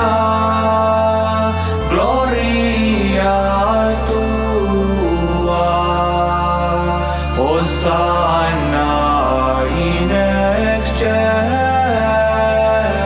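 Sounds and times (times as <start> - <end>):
choir chanting: 0.0 - 13.0
sustained low tones: 0.0 - 13.0.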